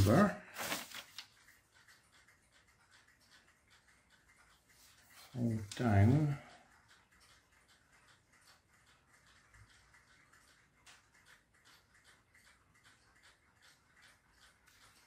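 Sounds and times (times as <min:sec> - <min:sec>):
paper creasing: 0:00.0 - 0:01.3.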